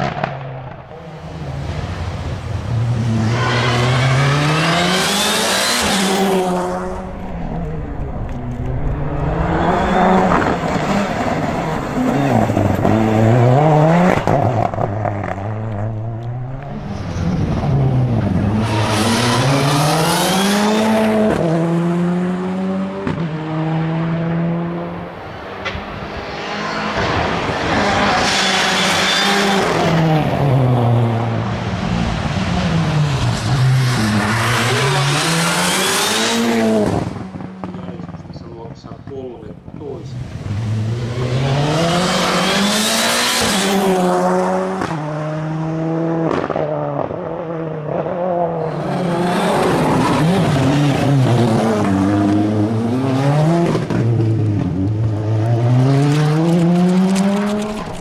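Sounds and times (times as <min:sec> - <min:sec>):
rally car engine revving: 0:00.0 - 0:38.4, 0:39.0 - 0:58.0.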